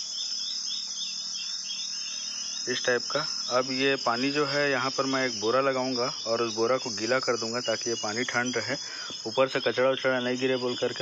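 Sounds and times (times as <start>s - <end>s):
insects trilling: 0.0s - 11.0s.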